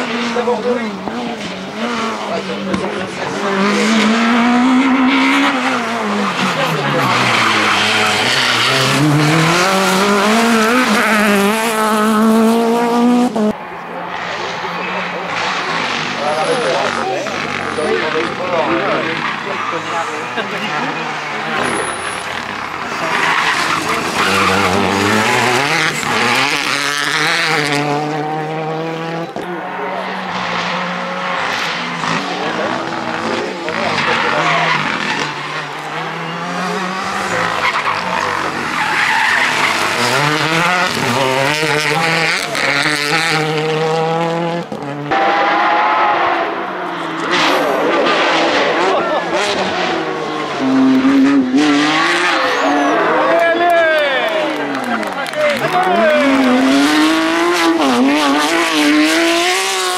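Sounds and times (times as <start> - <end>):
rally cars passing at speed: 0.0 - 59.9.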